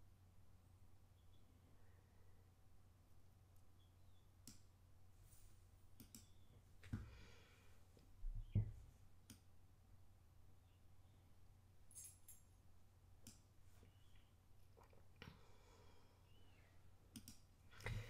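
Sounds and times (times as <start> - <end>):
computer mouse clicks: 4.4 - 4.7, 6.0 - 6.4, 17.1 - 17.4.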